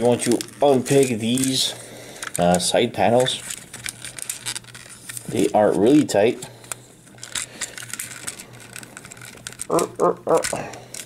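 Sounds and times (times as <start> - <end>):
plastic toy parts clicking: 2.2 - 4.8, 7.2 - 11.0.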